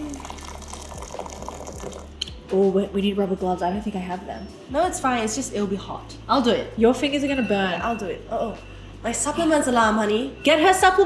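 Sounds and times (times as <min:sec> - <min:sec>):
water pouring into a bowl: 0:00.0 - 0:02.2.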